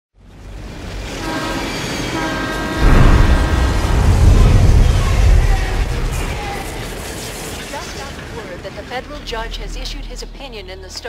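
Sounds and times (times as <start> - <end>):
train rumble: 0.2 - 10.8
locomotive air horn: 1.1 - 3.8.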